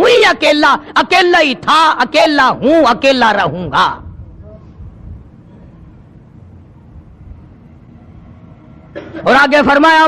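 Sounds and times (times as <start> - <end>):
low rumble with faint hiss: 4.0 - 8.8.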